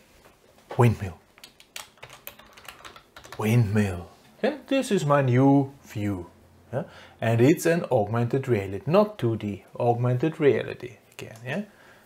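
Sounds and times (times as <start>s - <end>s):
light keyboard keystrokes: 1.3s - 3.4s.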